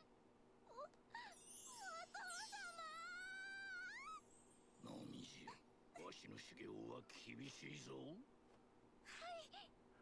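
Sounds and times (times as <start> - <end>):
girl crying out: 0.7 - 4.2.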